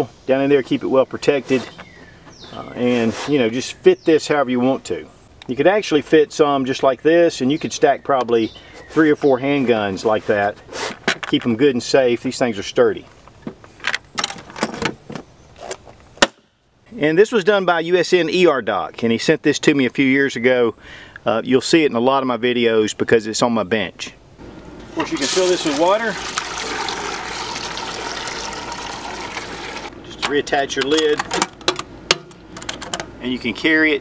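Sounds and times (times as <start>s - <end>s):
water pouring into metal can: 24.8s - 29.9s
metal lid clanking and latching: 30.2s - 33.2s.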